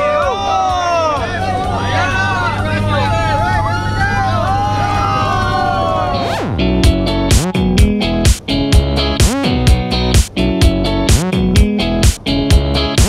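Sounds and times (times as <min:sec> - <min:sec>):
excited voices: 0:00.0 - 0:06.6
downward sweep: 0:01.2 - 0:08.4
plane engine drone in cabin: 0:01.7 - 0:06.6
strummed guitar music: 0:06.2 - 0:13.0.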